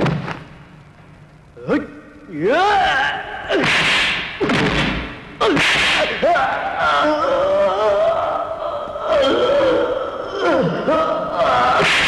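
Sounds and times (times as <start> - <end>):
shouts and yells of effort: 6.1 - 12.0.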